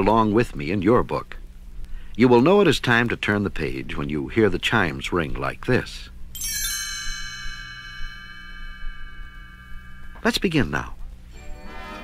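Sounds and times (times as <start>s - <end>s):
page-turn chime ringing: 6.4s - 10.8s.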